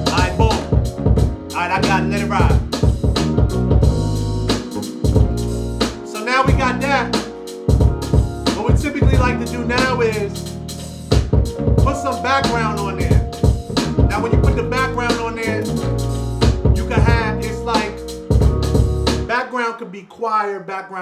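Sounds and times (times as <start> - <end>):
person rapping: 0.0 - 0.8, 1.5 - 2.7, 6.1 - 7.2, 8.5 - 10.4, 11.8 - 13.3, 13.9 - 15.8, 16.6 - 18.1
hip hop beat with bass and drums: 0.0 - 19.6.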